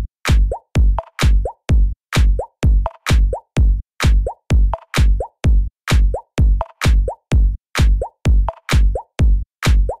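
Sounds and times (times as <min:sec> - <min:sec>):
kick drum: 0:00.0 - 0:10.0.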